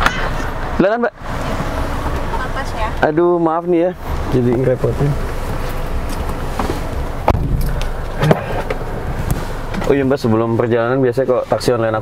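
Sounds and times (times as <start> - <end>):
car cabin noise: 0.0 - 12.0
knocks and bumps: 6.2 - 10.0.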